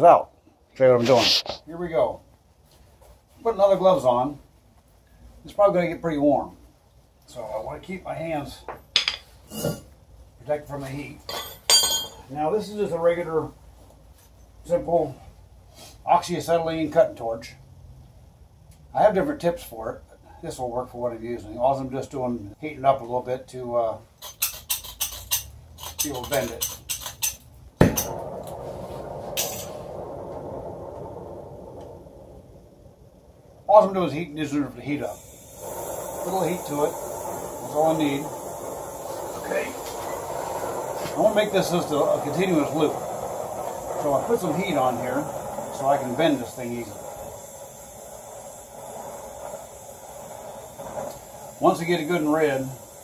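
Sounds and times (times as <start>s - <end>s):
cutting torch flame hissing: 0.8s - 2.2s, 24.2s - 53.0s.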